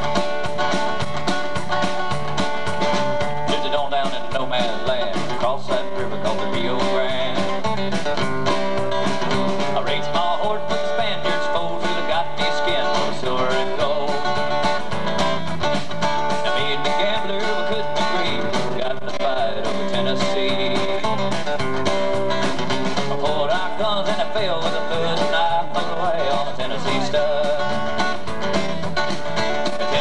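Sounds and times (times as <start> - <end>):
country band playing: 0.0 - 30.0.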